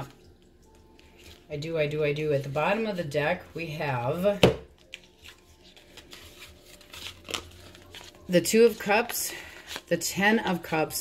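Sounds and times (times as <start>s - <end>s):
cards rustling and ticking: 0.4s - 1.5s, 4.8s - 10.2s.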